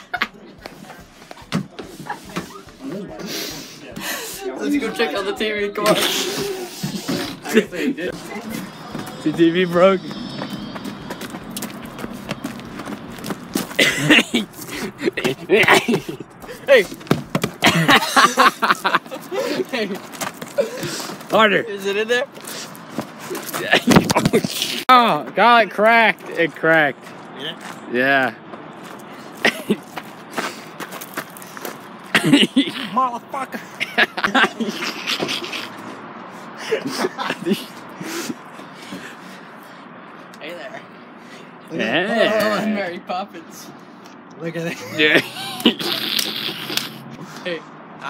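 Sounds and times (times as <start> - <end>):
footsteps on leafy dirt trail: 10.0 - 15.4, 28.5 - 32.0.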